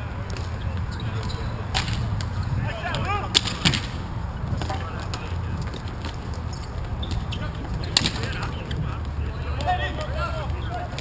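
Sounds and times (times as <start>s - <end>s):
hockey sticks clacking on puck: 0.2s - 11.0s.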